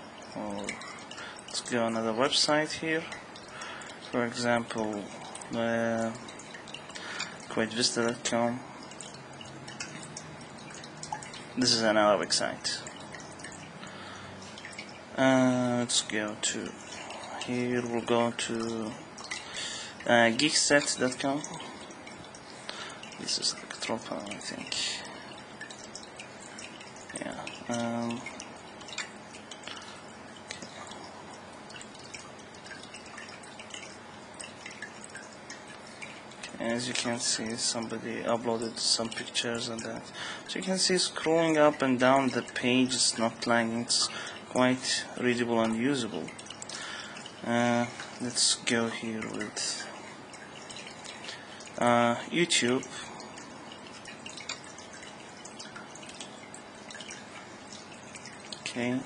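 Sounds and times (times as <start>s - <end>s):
steady low hiss: 0.0s - 59.0s
faint irregular clicks: 25.3s - 31.1s.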